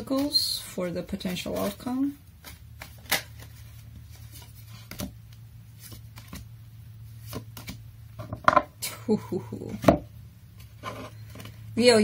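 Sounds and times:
cards snapping and tapping: 0:02.4 - 0:03.5.

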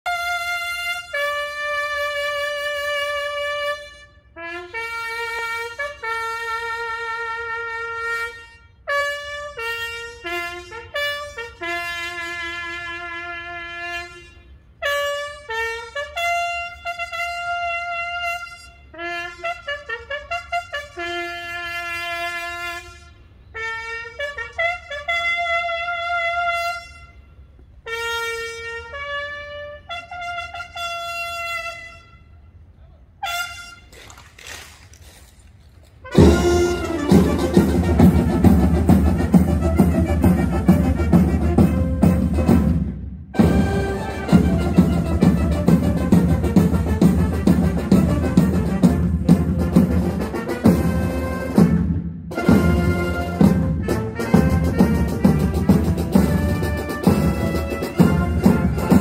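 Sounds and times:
bugle playing military call: 0:00.0 - 0:34.2, 0:35.9 - 0:59.0.

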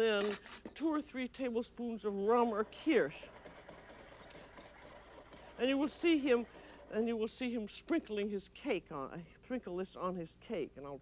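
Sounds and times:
saucepan scraping on coil burner: 0:02.3 - 0:07.9.

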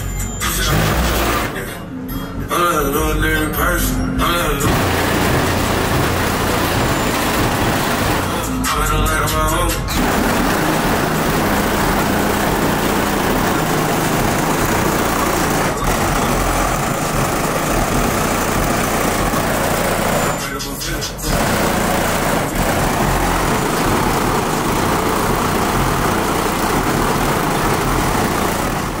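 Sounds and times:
distorted bass-heavy car audio music: 0:00.0 - 0:29.0.

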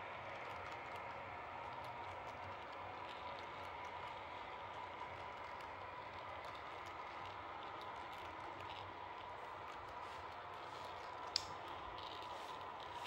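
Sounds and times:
model train rolling hum: 0:00.0 - 0:13.0.

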